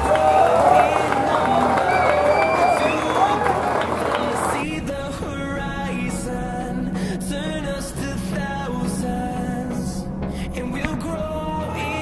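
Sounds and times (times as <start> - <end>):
people's voices wavering in pitch: 0.0 - 4.6.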